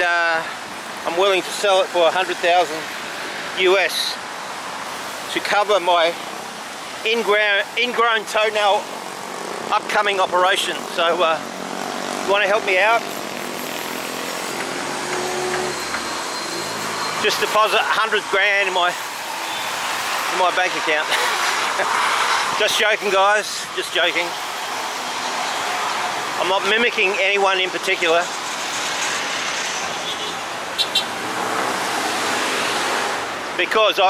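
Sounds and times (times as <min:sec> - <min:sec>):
traffic: 0:00.0 - 0:34.0.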